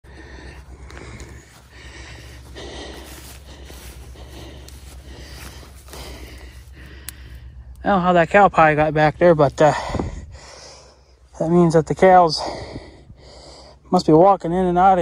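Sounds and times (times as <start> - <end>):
breathing close to microphone: 0.0 - 7.8, 9.5 - 13.9
footsteps through dry grass: 0.0 - 11.8
steady low rumble: 0.0 - 15.0.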